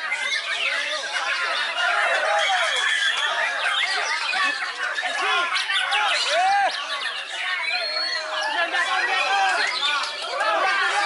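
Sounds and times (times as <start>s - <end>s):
caged songbirds singing: 0.0s - 11.0s
many voices shouting and chattering: 0.0s - 11.0s.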